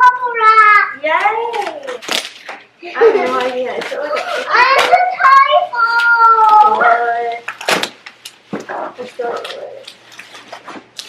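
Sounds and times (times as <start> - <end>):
bubble wrap crinkling: 1.0 - 11.0.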